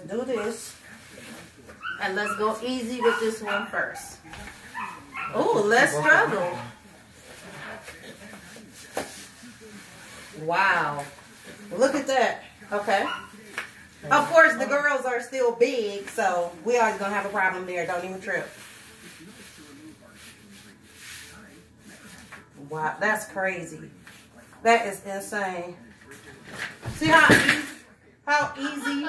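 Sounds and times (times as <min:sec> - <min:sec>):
stretchy fabric rubbing: 0:00.1 - 0:14.7.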